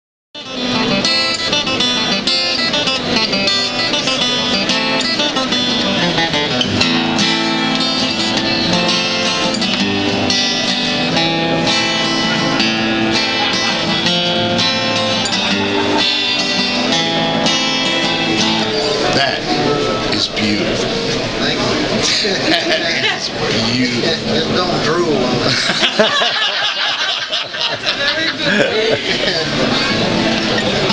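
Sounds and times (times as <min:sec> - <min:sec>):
guitar plucked notes and chords: 0:00.4 - 0:25.5, 0:28.1 - 0:30.9.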